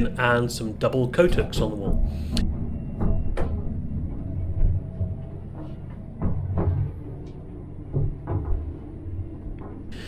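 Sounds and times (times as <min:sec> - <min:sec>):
train rumbling: 0:00.0 - 0:10.0.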